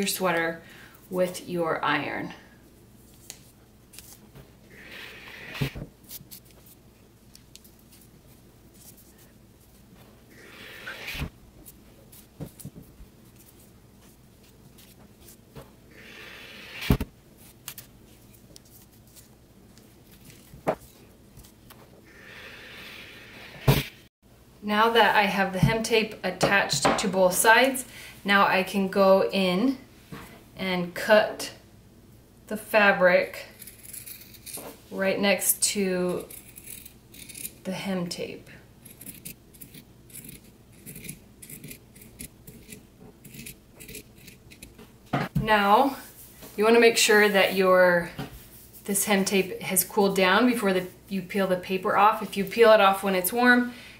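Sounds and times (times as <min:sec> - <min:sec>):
rustling hiss of tape handling: 0:03.0 - 0:04.6, 0:05.2 - 0:10.3
scissors snipping fabric: 0:38.8 - 0:44.8.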